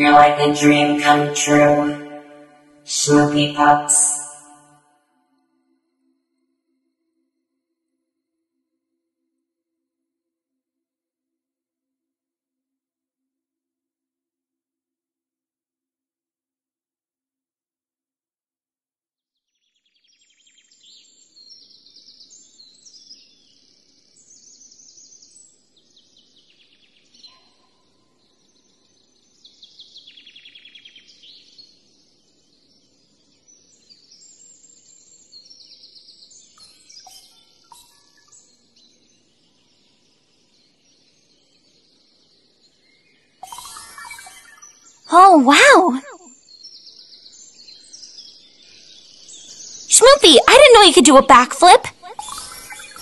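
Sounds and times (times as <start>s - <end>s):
birds chirping trills: 0.0s - 4.5s, 20.1s - 53.0s.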